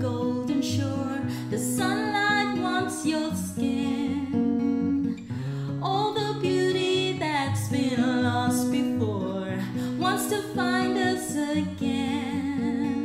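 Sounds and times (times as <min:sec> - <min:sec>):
acoustic guitar playing: 0:00.0 - 0:13.0
woman singing: 0:00.0 - 0:13.0.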